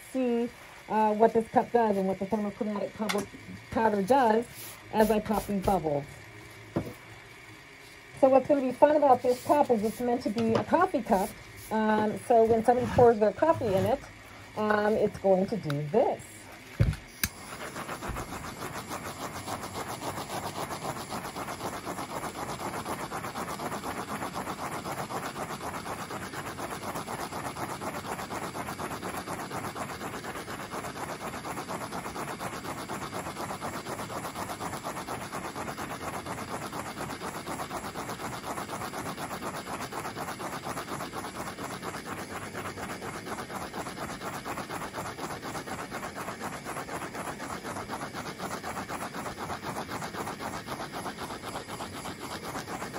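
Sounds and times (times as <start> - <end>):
torch flame fluttering: 0.0 - 52.9.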